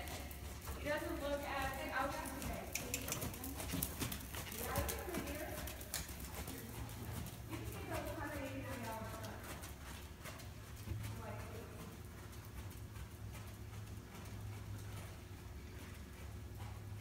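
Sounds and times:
horse hoofbeats on sand: 0.0 - 17.0.

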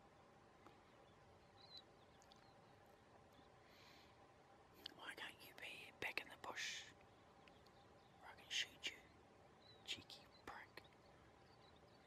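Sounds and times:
man whispering: 4.8 - 7.0, 8.2 - 9.1, 9.8 - 10.8.

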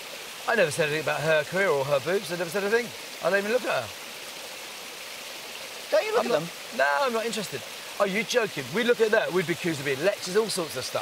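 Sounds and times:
outdoor background hiss: 0.0 - 11.0
person speaking: 5.9 - 11.0.

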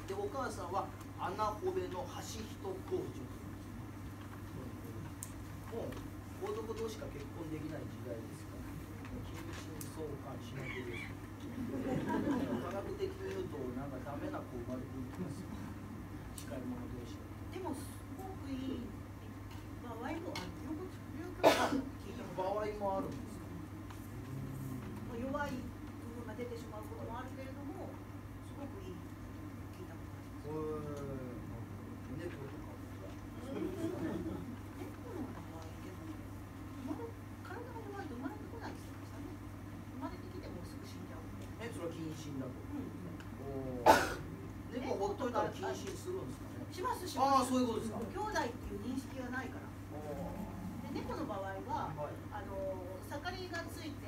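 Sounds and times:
person speaking: 0.0 - 11.5
low steady hum: 0.0 - 54.0
two people talking: 0.0 - 54.0
loud cough: 21.4 - 21.9, 43.8 - 44.3.

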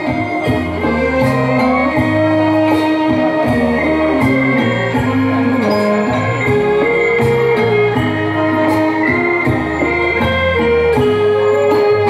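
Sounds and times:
bass line: 0.0 - 12.0
organ-like melody: 0.0 - 12.0.

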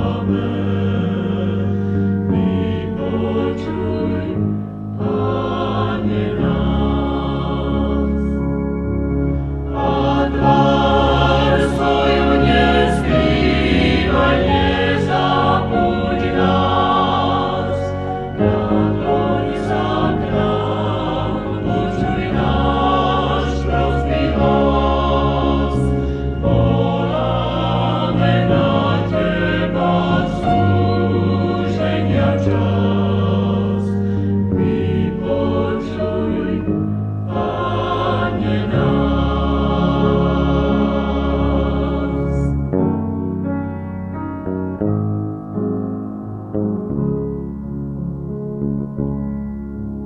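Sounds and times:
vocal group singing a hymn: 0.0 - 8.5, 9.7 - 42.6.

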